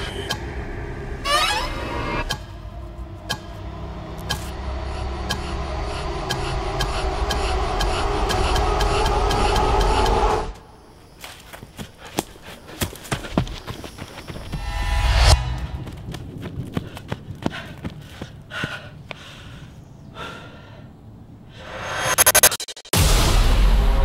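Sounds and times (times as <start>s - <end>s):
low drone: 0.0s - 10.8s, 14.6s - 16.4s
sharp ticks: 2.2s - 2.6s, 3.2s - 4.6s, 5.3s - 5.6s, 6.2s - 10.6s
knocks and clicks: 3.2s - 3.6s, 4.2s - 4.6s, 6.3s - 10.5s.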